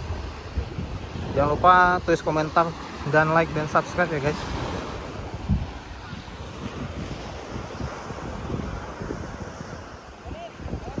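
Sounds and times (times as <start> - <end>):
small waves washing onto sand: 0.0 - 11.0
wind buffeting microphone: 0.0 - 11.0.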